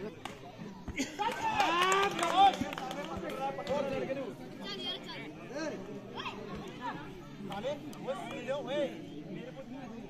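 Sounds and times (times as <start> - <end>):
voices shouting and calling out: 0.0 - 10.0.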